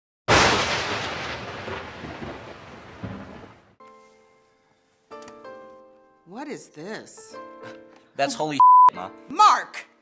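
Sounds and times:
thunder rumbling: 0.3s - 3.8s.

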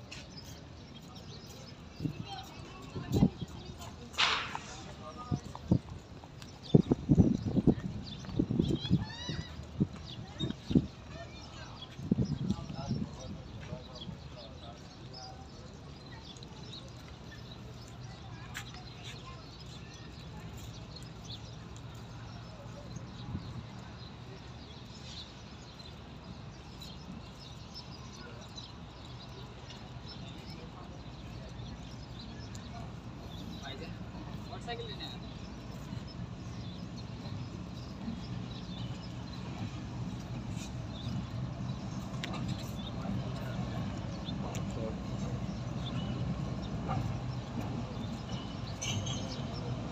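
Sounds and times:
distant locomotive rumble: 39.1s - 49.9s.

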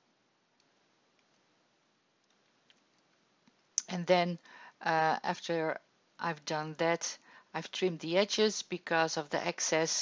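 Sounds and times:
person speaking: 3.8s - 10.0s.

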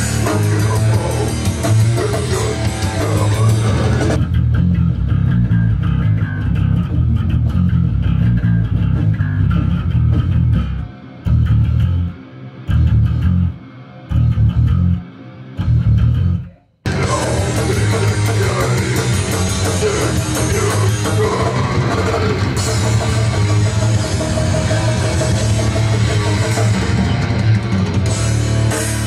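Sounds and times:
electric bass guitar: 0.0s - 29.0s
heavy metal band playing: 0.0s - 29.0s.

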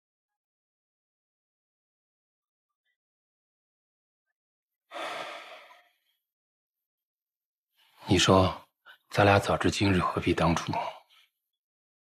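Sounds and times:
person sighing: 4.9s - 5.8s.

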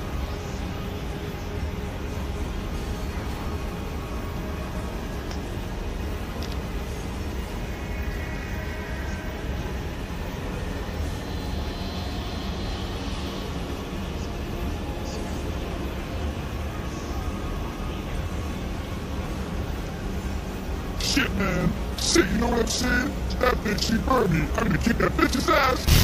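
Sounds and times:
rumbling electronic drone: 18.2s - 26.0s.

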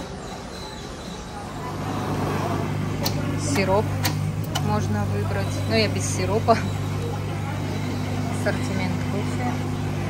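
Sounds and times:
vending machine motor hum: 0.0s - 10.0s.

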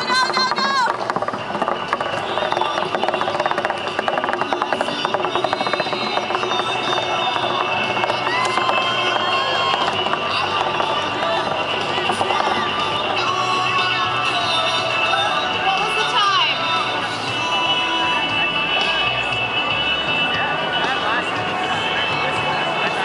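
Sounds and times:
crowd voices: 0.0s - 23.0s
music playing: 0.0s - 23.0s.

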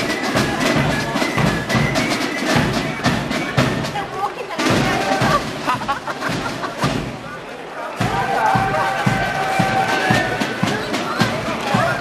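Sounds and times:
bass drum beat: 0.0s - 7.2s, 8.0s - 12.0s
military marching band playing: 0.0s - 7.4s, 8.0s - 12.0s
crowd voices: 0.0s - 12.0s.

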